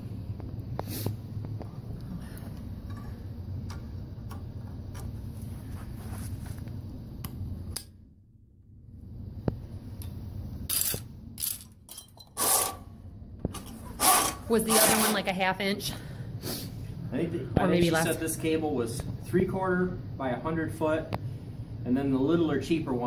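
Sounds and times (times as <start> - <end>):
steel cable rubbing: 12.4 - 12.8.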